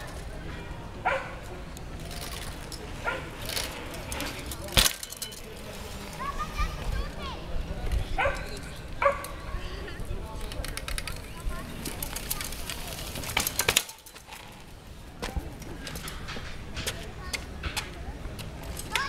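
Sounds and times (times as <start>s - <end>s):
voices in background: 0.0s - 19.0s
dog barking: 1.0s - 1.4s, 3.0s - 3.3s, 8.2s - 9.3s.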